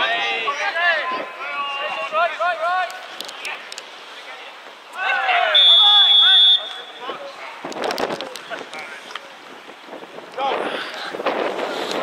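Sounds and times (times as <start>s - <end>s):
distant shouts: 4.9s - 7.4s
wind noise on microphone: 7.0s - 12.0s.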